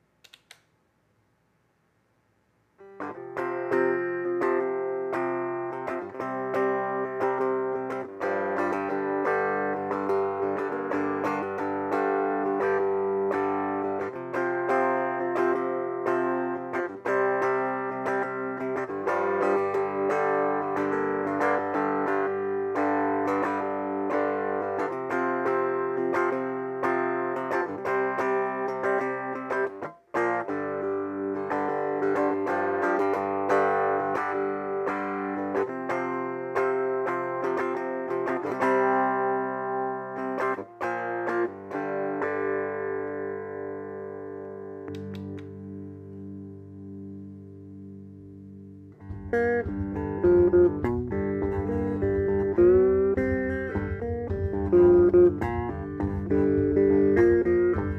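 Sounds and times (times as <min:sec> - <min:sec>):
electric guitar notes and chords: 0:02.8 - 0:57.9.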